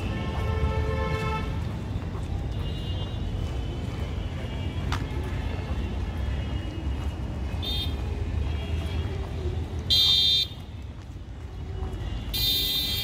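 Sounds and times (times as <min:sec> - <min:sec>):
low traffic rumble: 0:00.0 - 0:13.0
vehicle horn blasts: 0:09.9 - 0:10.6, 0:12.3 - 0:13.0.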